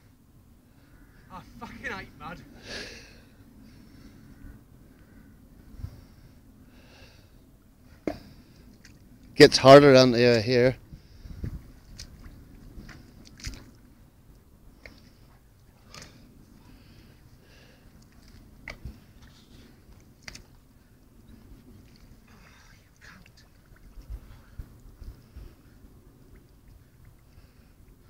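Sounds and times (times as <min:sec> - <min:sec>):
wet squelches in mud: 0:11.7 - 0:25.6.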